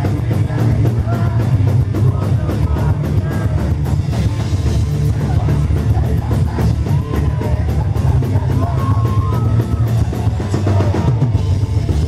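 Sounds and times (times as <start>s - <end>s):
bass drum: 0.0s - 12.0s
folk-metal band playing live: 0.0s - 12.0s.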